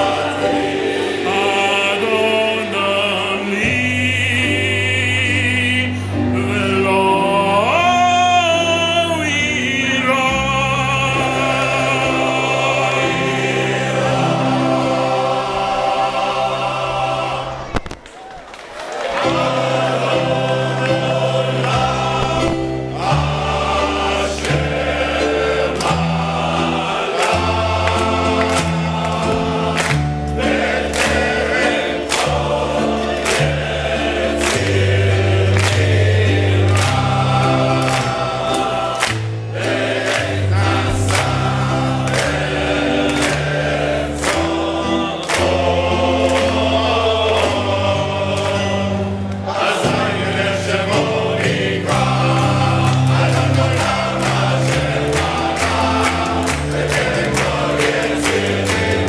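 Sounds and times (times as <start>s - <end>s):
men's choir singing: 0.0s - 18.0s, 18.9s - 59.0s.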